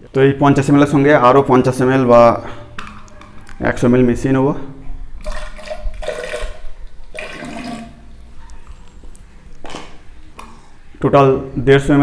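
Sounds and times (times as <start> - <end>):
water pouring into plastic jug: 5.2 - 8.2.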